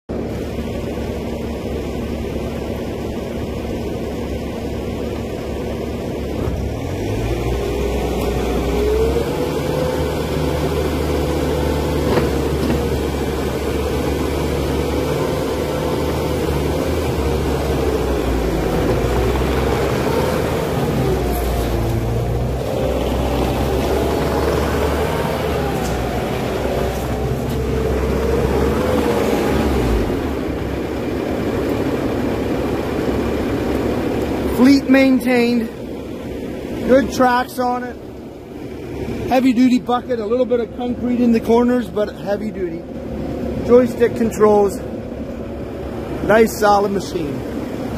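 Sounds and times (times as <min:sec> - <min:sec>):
diesel engine running: 0:00.1 - 0:47.9
track loader whine: 0:00.1 - 0:47.9.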